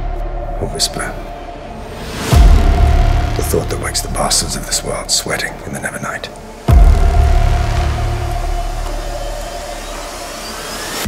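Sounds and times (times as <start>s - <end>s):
low rumbling drone: 0.0s - 11.0s
deep boom: 2.3s - 5.1s.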